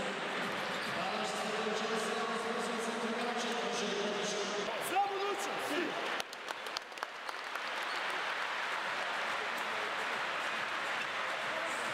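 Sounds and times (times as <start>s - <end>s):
crowd applauding: 5.8s - 11.9s.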